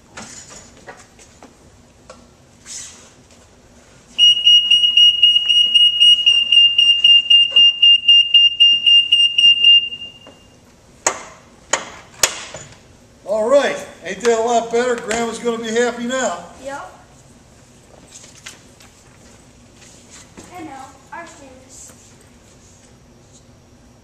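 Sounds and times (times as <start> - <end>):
high-pitched warning beep: 4.2 - 10.5.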